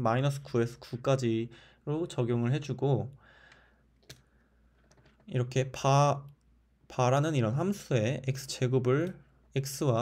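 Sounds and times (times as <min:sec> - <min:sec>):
soft breath: 0:03.2 - 0:04.9.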